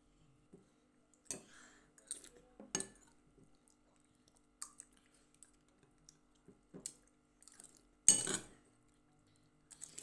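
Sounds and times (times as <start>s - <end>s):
metal spoons clicking on glass bowls: 8.1s - 8.5s.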